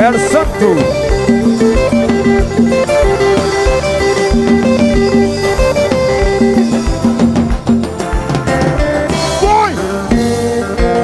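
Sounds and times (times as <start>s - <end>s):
electric guitar plucked notes: 0.0s - 11.0s.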